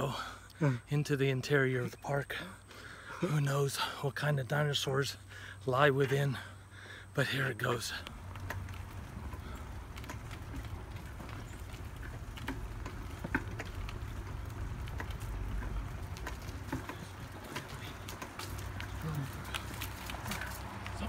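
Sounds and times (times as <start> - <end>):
tricycle rolling on pavement: 0.0 - 21.0
light clicks and rattles: 7.9 - 21.0.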